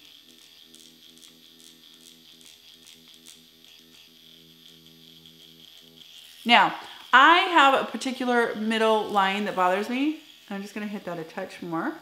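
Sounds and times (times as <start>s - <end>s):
microneedling pen buzzing: 0.0s - 12.0s.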